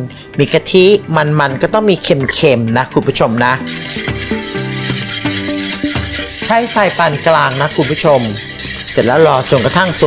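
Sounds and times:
background music of held notes: 0:00.0 - 0:10.0
whisk stirring in metal saucepan: 0:03.5 - 0:10.0.

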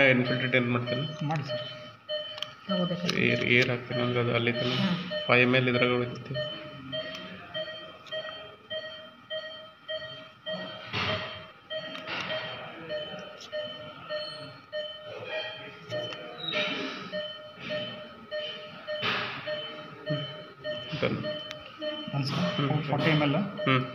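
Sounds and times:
medical equipment beeping: 0:00.0 - 0:23.9.

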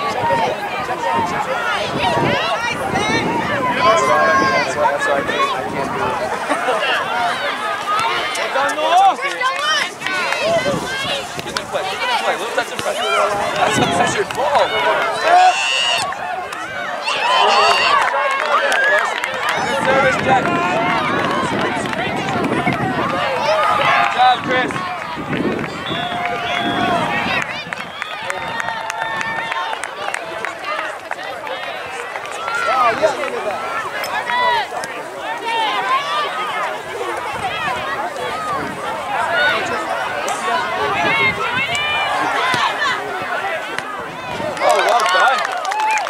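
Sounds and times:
spectators and players shouting: 0:00.0 - 0:46.0.

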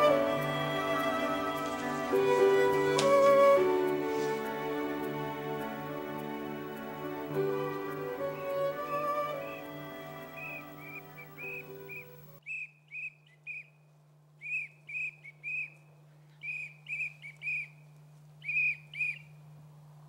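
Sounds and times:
background music sustained notes: 0:00.0 - 0:12.4
small bird chirping: 0:03.9 - 0:13.8, 0:14.4 - 0:19.4.

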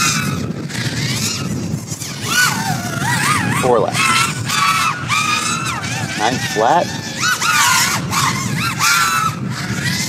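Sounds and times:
drone motors whining: 0:00.0 - 0:10.0.

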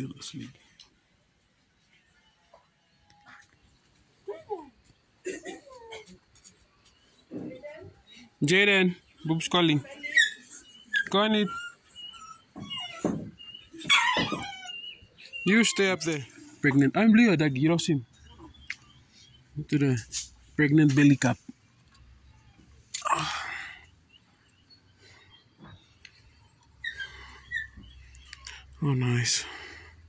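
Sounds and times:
faint bird chirps: 0:01.7 - 0:30.0.

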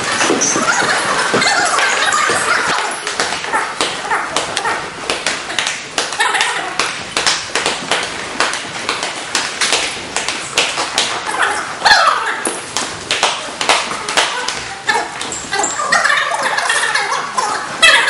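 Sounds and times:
voices calling out: 0:00.0 - 0:04.9.

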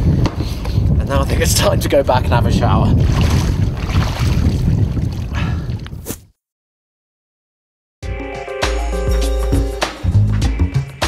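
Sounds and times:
wind buffeting microphone: 0:00.0 - 0:06.1.

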